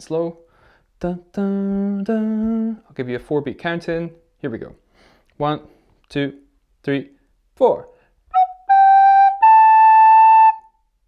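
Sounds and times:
recorder notes: 0:08.3 - 0:10.7.

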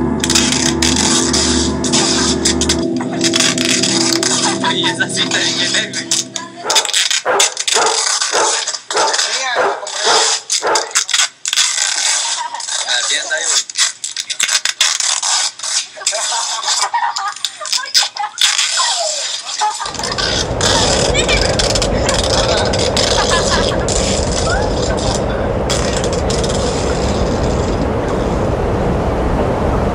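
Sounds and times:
indistinct voices: 0:00.0 - 0:07.6, 0:19.8 - 0:28.6
steady low noise: 0:00.0 - 0:08.1, 0:19.9 - 0:29.9.

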